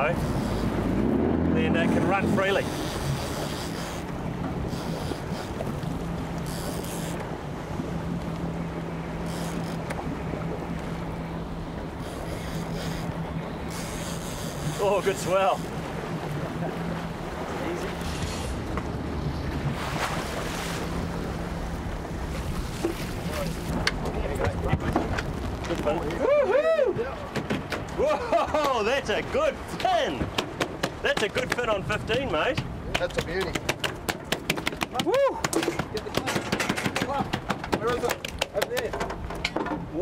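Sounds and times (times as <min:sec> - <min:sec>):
boat engine humming: 0:00.0 - 0:40.0
water rushing along hull: 0:00.0 - 0:40.0
man exclaiming woo: 0:26.1 - 0:27.2, 0:34.9 - 0:35.5
fish tail knocking on deck: 0:32.6 - 0:39.8.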